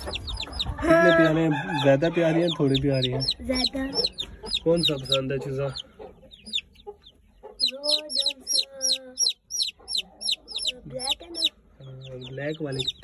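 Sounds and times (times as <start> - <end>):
chicks peeping: 0.0 - 13.0.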